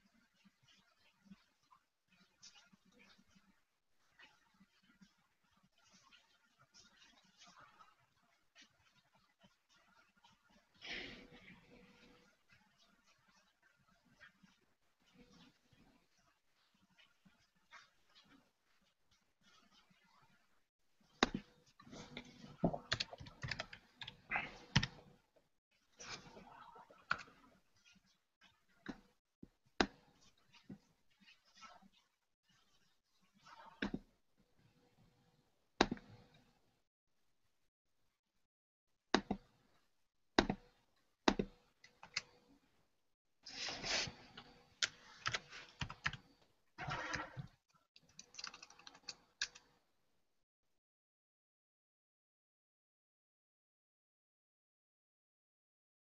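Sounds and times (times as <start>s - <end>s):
keyboard typing: 22.7s - 25.1s, 44.8s - 46.3s, 48.0s - 49.6s.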